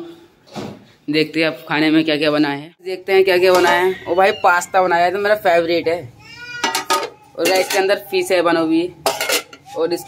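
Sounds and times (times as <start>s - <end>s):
metal utensils clinking on pots: 3.4s - 4.0s, 6.6s - 10.0s.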